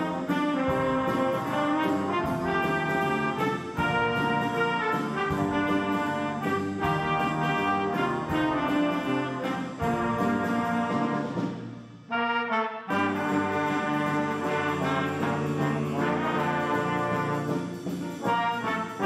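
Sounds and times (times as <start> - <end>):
jazz band horns playing: 0.0 - 19.0.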